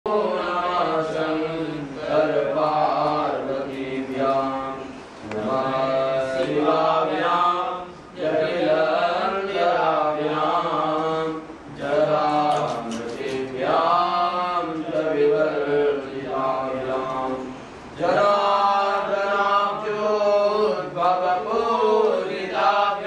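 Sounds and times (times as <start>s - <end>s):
man chanting: 0.1s - 23.0s.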